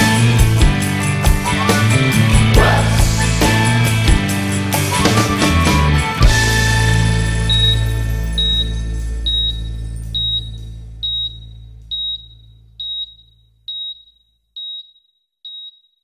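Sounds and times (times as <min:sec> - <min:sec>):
rock song chord ringing: 0:00.0 - 0:11.0
high electronic beep: 0:07.4 - 0:14.8.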